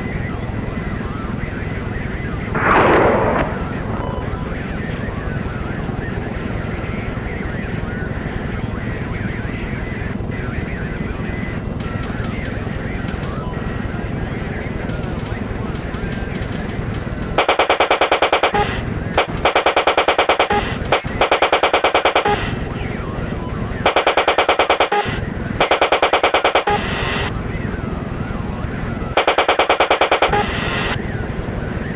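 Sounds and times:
steady low rumble: 0:00.0 - 0:17.6
rapid automatic gunfire: 0:02.6 - 0:04.2, 0:11.8 - 0:13.4, 0:14.4 - 0:22.6, 0:23.8 - 0:27.3, 0:29.2 - 0:30.9.

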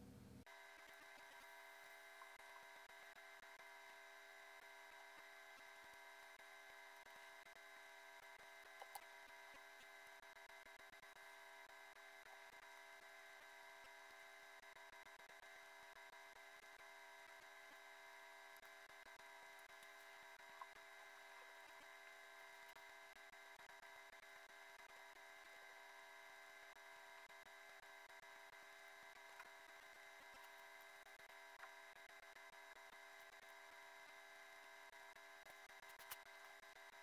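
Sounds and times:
faint electronic hum: 0:00.0 - 0:37.0.

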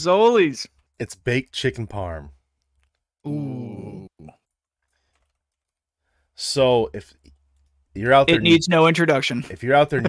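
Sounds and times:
person murmuring: 0:03.3 - 0:04.3, 0:08.3 - 0:08.9
faint keyboard typing: 0:04.4 - 0:05.8, 0:07.0 - 0:08.2.

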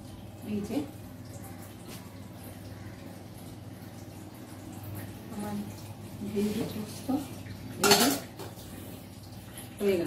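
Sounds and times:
metal lid and bowl clinking: 0:07.8 - 0:08.4.

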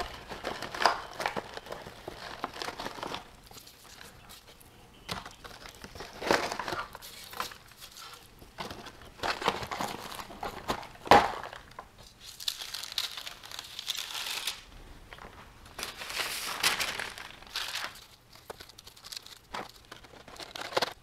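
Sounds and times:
foil bag crinkling: 0:00.0 - 0:04.5, 0:05.2 - 0:14.7, 0:15.7 - 0:21.0
paper and foil rustling: 0:00.0 - 0:21.0.

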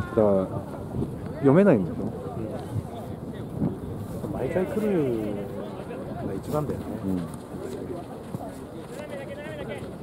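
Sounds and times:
open-air background noise: 0:00.0 - 0:10.0.

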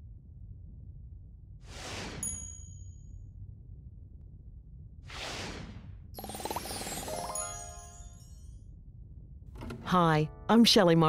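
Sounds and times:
whoosh: 0:01.6 - 0:02.4, 0:05.0 - 0:06.1.

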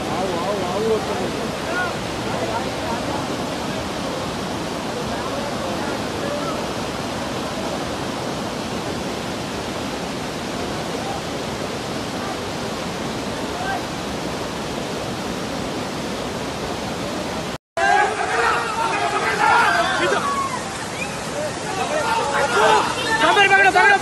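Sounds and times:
floodwater rushing: 0:00.0 - 0:24.0.

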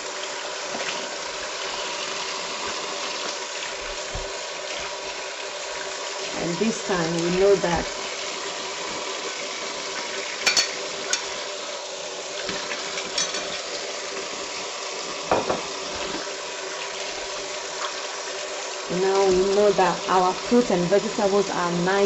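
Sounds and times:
faucet running into bowl: 0:00.0 - 0:22.0.

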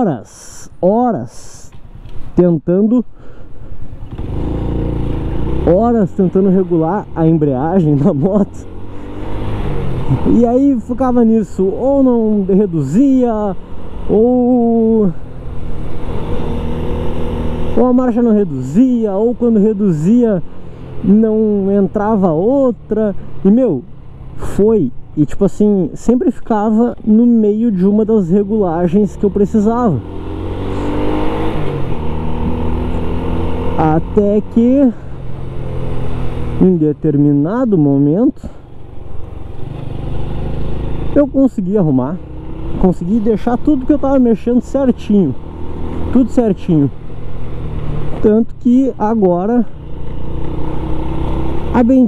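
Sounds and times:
motorcycle engine running: 0:03.7 - 0:52.0.

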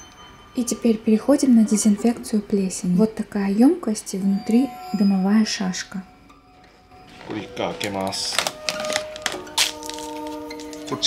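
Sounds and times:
steady musical tone: 0:00.0 - 0:11.0
foil crinkling: 0:07.3 - 0:11.0.

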